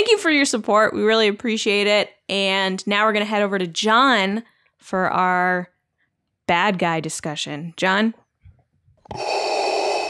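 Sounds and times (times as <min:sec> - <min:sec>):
mechanical respirator breathing: 0:09.0 - 0:10.0.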